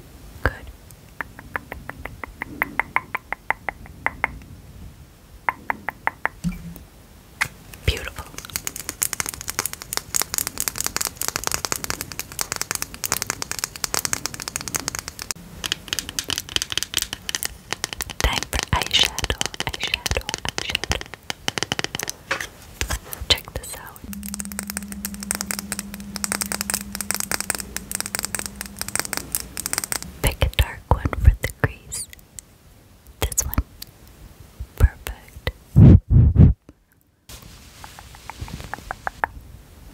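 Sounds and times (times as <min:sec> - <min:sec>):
low steady hum: 0:06.4 - 0:09.0, 0:11.4 - 0:21.3, 0:22.1 - 0:39.8
fingernails tapping on packaging: 0:08.4 - 0:23.0.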